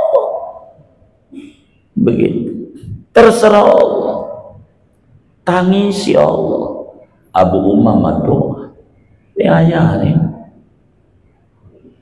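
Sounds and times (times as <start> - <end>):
man's voice through microphone: 1.9 - 4.8, 5.4 - 10.6.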